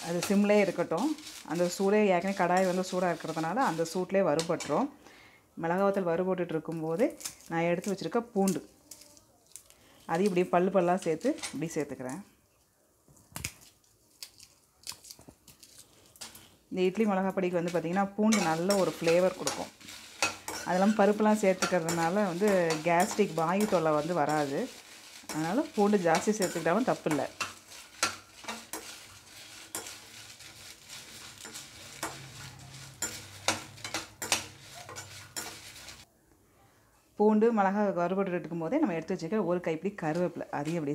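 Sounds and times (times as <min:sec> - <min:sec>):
chillies crackling in a hot pan: 0:00.0 - 0:05.1, 0:05.7 - 0:12.3, 0:13.4 - 0:36.1, 0:38.7 - 0:40.9.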